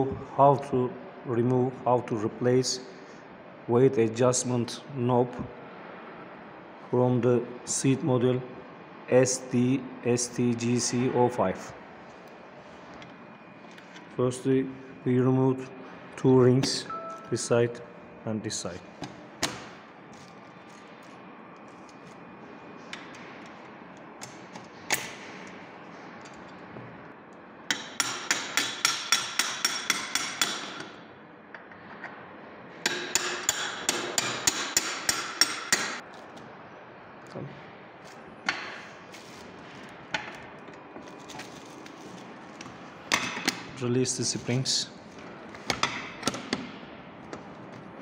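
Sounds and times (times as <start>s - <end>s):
rapid metal taps on steel: 27.7s - 30.9s.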